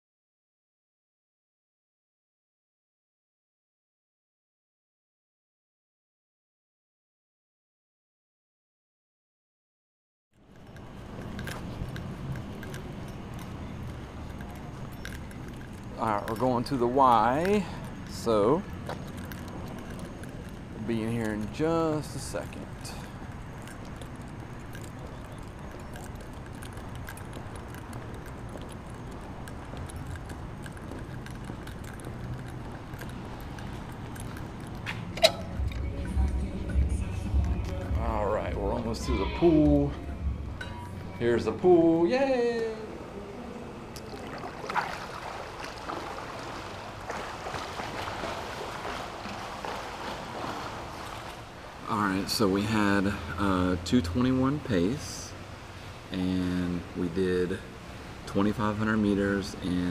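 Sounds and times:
faint clicks and jingles: 0:10.4 - 0:41.9
pool water splashing: 0:10.5 - 0:59.9.

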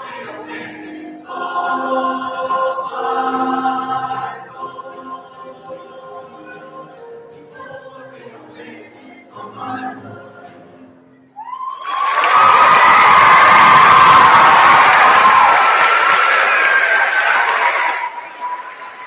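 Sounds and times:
choir singing: 0:00.0 - 0:11.0
cheering and high shouts: 0:11.4 - 0:19.0
audience applause: 0:11.5 - 0:19.0.

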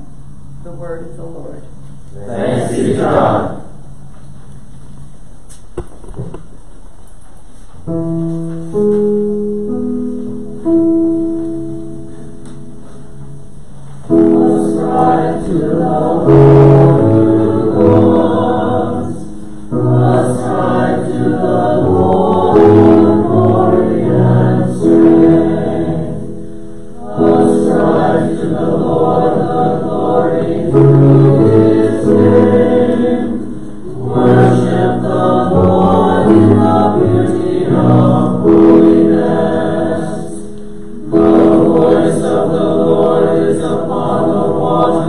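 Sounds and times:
congregation singing: 0:02.1 - 0:03.8, 0:14.0 - 0:45.0.

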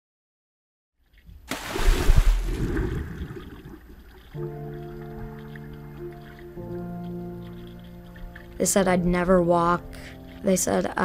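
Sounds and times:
splash into water: 0:01.5 - 0:03.9
water bubbling: 0:01.5 - 0:10.2
soft sustained music chords: 0:04.0 - 0:11.0.

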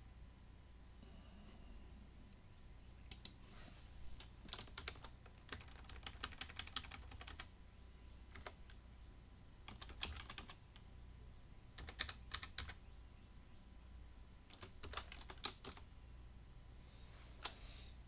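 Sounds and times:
computer keyboard typing: 0:04.2 - 0:07.5, 0:08.3 - 0:08.8, 0:09.6 - 0:10.9, 0:11.8 - 0:12.8, 0:14.5 - 0:15.9.

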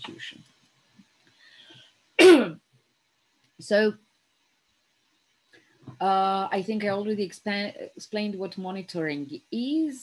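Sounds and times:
woman clearing her throat: 0:02.2 - 0:02.6.

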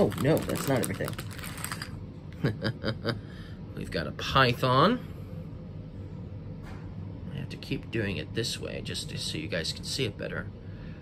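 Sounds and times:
plastic packaging rustling: 0:00.0 - 0:02.0.

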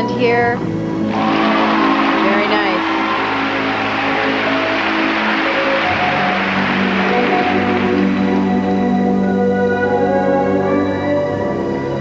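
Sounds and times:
audience applauding: 0:01.0 - 0:10.6
program music: 0:01.0 - 0:11.2.

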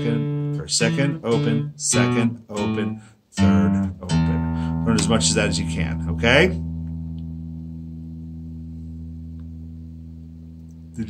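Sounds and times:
electric guitar note ringing: 0:03.4 - 0:11.0.

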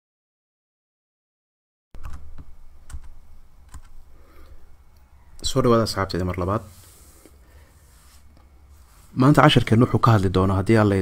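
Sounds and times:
low steady hum: 0:02.0 - 0:11.0.

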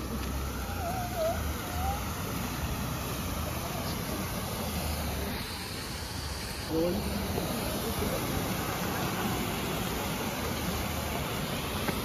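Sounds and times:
water rushing over rocks: 0:00.0 - 0:12.0.

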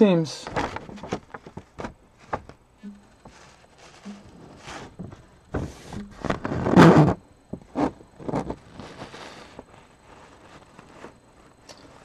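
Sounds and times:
paper rustling and scraping: 0:00.4 - 0:02.6, 0:03.2 - 0:12.0.

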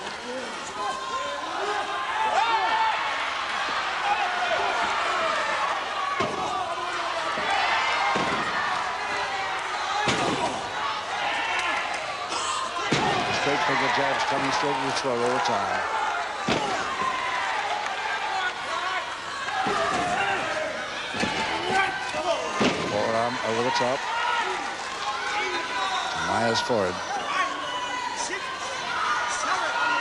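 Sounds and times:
crowd shouting: 0:00.0 - 0:30.0.

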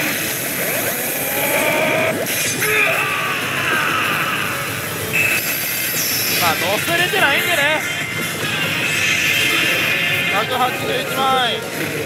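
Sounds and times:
din of gaming hall: 0:00.0 - 0:12.0
slot machine sound effects: 0:04.7 - 0:12.0
electronic tones: 0:05.0 - 0:08.0.

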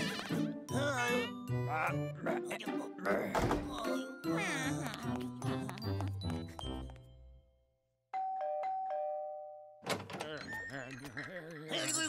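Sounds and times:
doorbell chiming ding-dong: 0:08.2 - 0:09.8.

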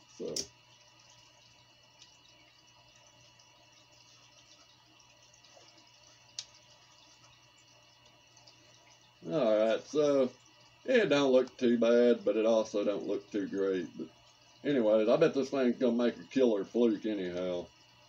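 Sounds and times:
faint hum and hiss: 0:00.0 - 0:18.0.

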